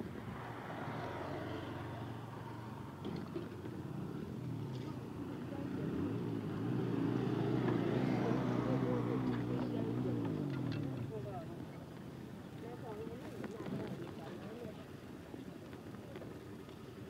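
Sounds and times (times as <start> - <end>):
motorcycle engine approaching: 0.6 - 11.3.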